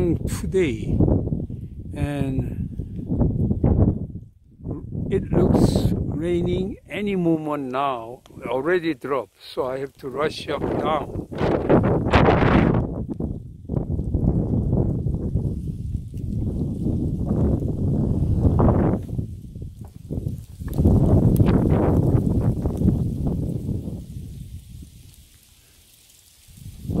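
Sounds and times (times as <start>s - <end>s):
gusting wind buffeting microphone: 0.0s - 9.2s, 9.8s - 27.0s.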